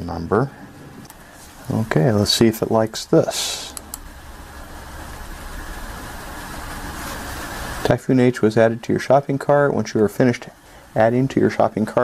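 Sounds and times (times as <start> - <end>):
even hiss: 0.0 - 12.0.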